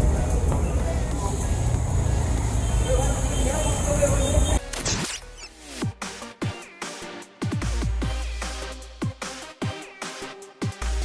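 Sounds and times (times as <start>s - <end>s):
low rumble of traffic: 0.0s - 4.6s.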